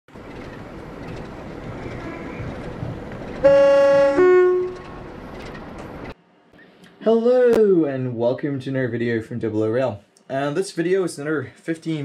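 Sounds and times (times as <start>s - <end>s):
train rumbling: 0.1s - 6.2s
two-tone train horn: 3.4s - 5.0s.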